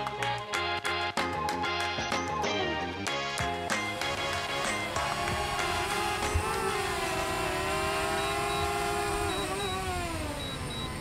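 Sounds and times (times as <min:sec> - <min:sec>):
drone propellers whining: 0:01.7 - 0:11.0.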